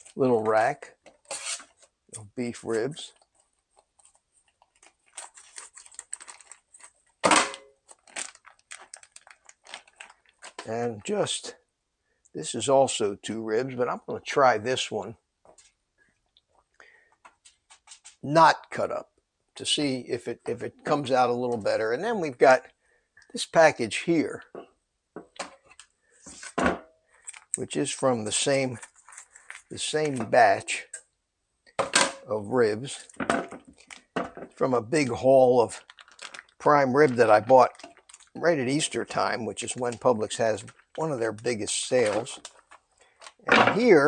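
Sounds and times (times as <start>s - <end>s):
plastic packaging crinkling: 3.1s - 7.2s, 7.8s - 10.7s, 27.2s - 27.6s, 28.4s - 30.2s, 33.0s - 43.9s
plastic rustle and thump: 33.1s - 34.6s.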